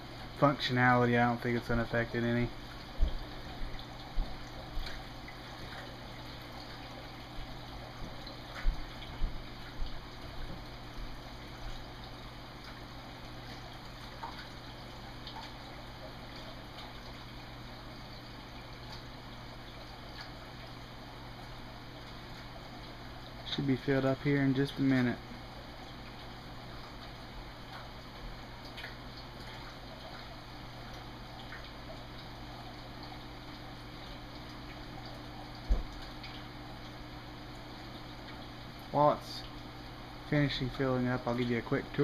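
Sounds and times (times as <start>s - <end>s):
low steady hum: 0.0s - 42.0s
water running into a tank: 0.0s - 42.0s.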